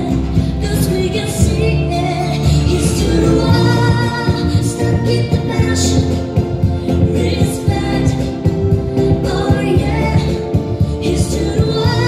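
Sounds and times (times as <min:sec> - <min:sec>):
pop song over sound system: 0:00.0 - 0:12.0.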